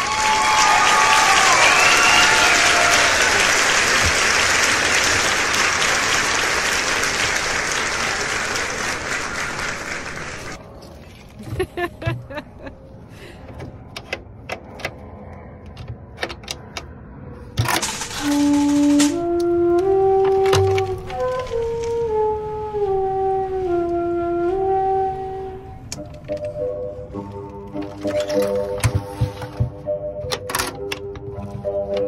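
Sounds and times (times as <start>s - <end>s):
background music: 17.6s - 32.0s
metal latch clicking: 30.2s - 32.0s.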